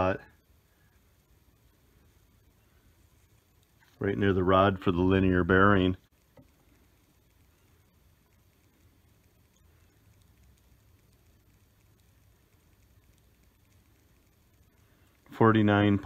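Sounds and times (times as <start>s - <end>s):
low hum: 0.0s - 16.0s
faint tick: 2.4s - 4.0s, 6.1s - 15.4s.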